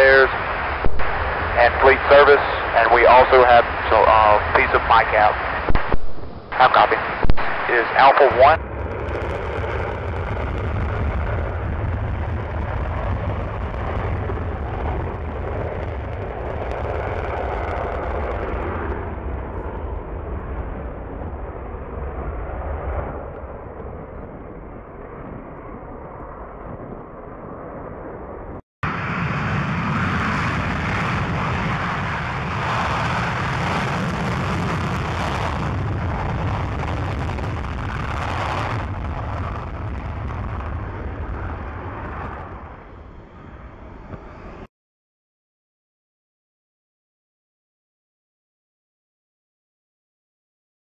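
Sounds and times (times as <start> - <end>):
jet afterburner take-off roar: 0.0 - 44.7.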